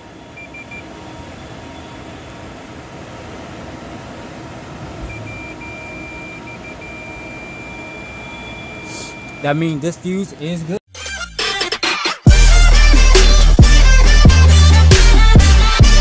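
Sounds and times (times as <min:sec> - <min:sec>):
multimeter continuity beeping: 0:00.3 - 0:02.6, 0:05.0 - 0:09.8.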